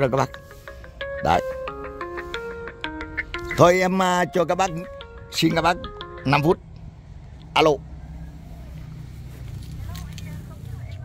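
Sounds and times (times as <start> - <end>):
man speaking: 0.0 - 0.4, 1.2 - 1.6, 3.4 - 6.6.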